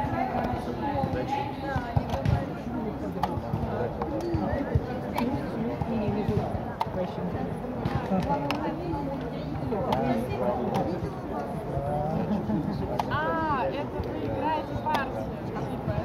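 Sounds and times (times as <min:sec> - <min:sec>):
people chatting: 0:00.0 - 0:16.0.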